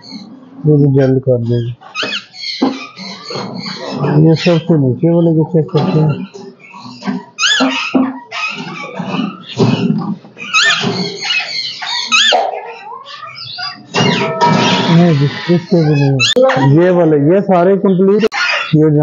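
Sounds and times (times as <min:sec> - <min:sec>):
parakeets calling: 0:00.0 - 0:19.0.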